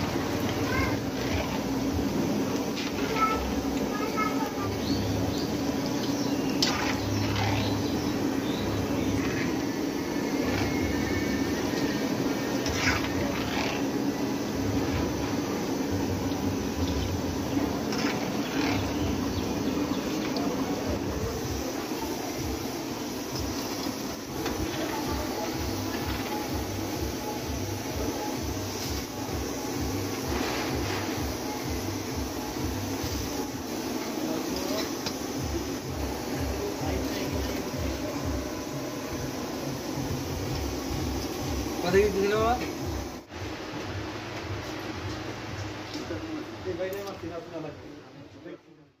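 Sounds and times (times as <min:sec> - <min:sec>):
hot oil sizzling and bubbling: 0:00.0 - 0:48.6
metal skimmer scraping pan: 0:06.5 - 0:08.2, 0:12.6 - 0:14.0, 0:17.7 - 0:19.3.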